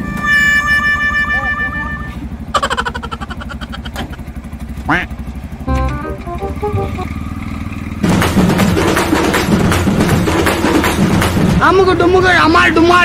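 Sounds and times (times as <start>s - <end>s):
small engine puttering: 2.0s - 11.7s
rising glide sound effect: 5.7s - 7.2s
stepped electronic notes: 5.7s - 7.2s.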